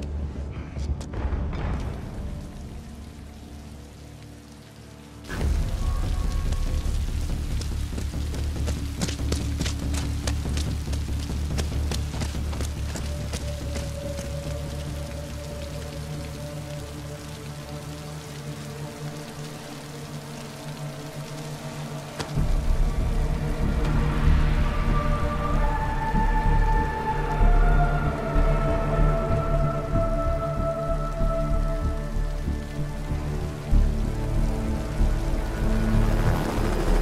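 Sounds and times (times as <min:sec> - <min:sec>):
film score held notes: 0:00.0 - 0:37.0
heavy rain pouring: 0:00.0 - 0:37.0.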